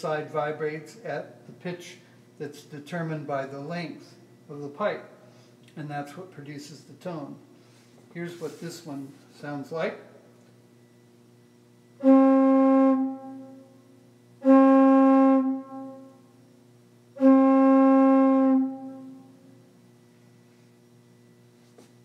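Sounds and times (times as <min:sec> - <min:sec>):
organ pipe notes blown by mouth: 0:12.0 - 0:13.8, 0:14.4 - 0:16.4, 0:17.1 - 0:19.5.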